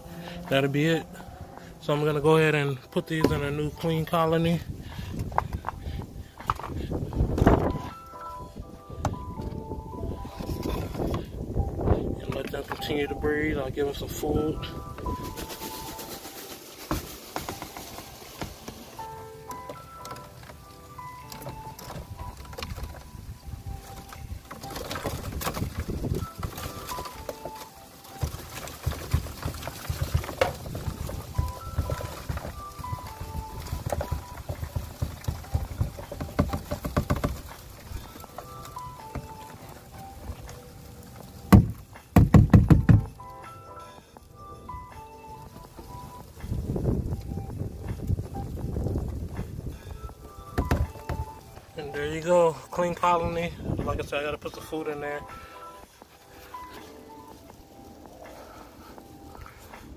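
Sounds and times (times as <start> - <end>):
background music melody: 0.0 - 59.9
roaches rattling onto cardboard: 14.7 - 43.2, 49.3 - 51.5.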